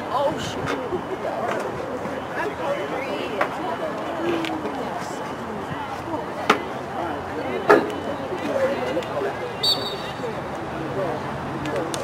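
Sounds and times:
distant players' voices: 0:00.0 - 0:12.0.

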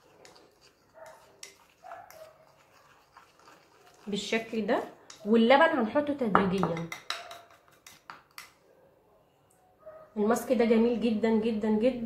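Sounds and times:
spoon scraping in bowl: 0:00.0 - 0:05.5, 0:06.4 - 0:08.5.

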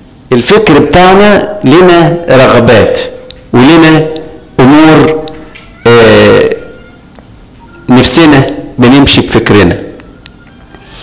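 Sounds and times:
man preaching: 0:00.3 - 0:07.0, 0:07.7 - 0:10.0.

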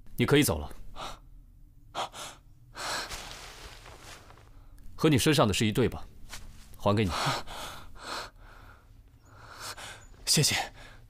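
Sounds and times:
person gasping breaths: 0:02.0 - 0:04.6, 0:07.1 - 0:10.1.

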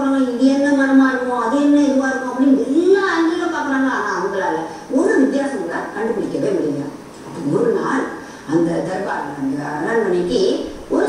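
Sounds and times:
woman's voice: 0:00.0 - 0:11.0.

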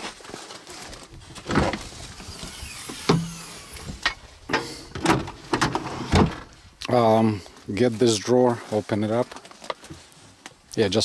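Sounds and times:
metal clunks: 0:02.9 - 0:06.5.

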